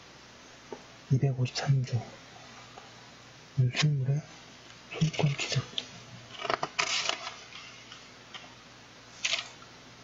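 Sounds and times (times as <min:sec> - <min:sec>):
book pages rustling: 0:06.3 - 0:08.5, 0:09.2 - 0:09.6.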